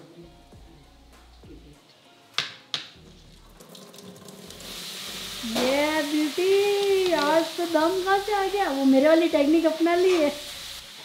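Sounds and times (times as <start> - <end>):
tap water running into sink: 3.4 - 7.4.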